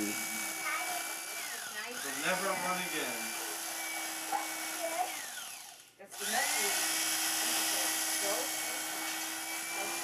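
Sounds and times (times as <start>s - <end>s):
electric carving knife humming: 0.0s - 10.0s.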